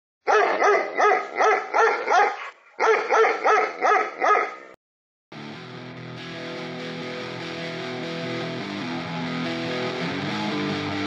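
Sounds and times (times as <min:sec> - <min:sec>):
dog barking: 0:00.2 - 0:04.8
guitar music: 0:05.3 - 0:11.0.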